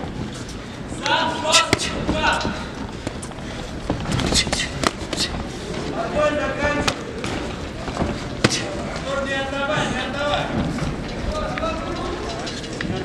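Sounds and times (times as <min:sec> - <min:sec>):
people shouting: 0:01.0 - 0:02.6
gloved blows smacking: 0:04.1 - 0:05.5.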